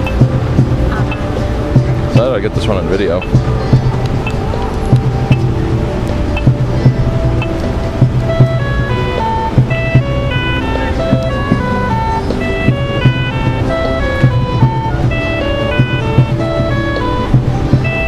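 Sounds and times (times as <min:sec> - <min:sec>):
traffic signal electronic chime melody: 0:00.0 - 0:18.0.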